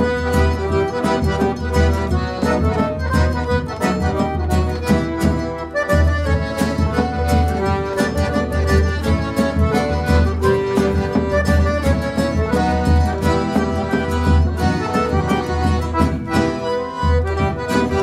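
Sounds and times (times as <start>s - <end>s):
accordions playing a tune: 0.0s - 18.0s.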